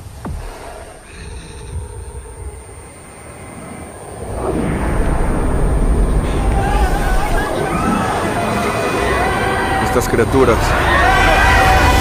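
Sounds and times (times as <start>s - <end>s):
deep soundtrack rumble: 0.0s - 12.0s.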